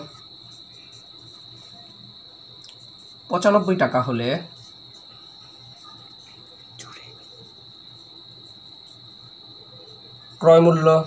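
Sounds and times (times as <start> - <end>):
high-pitched insect trill: 0.0 - 11.0.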